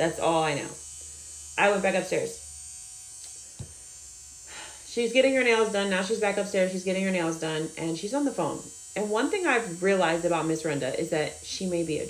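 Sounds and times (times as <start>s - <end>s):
electric nail drill filing: 0.0s - 12.0s
short tap: 3.6s - 3.8s.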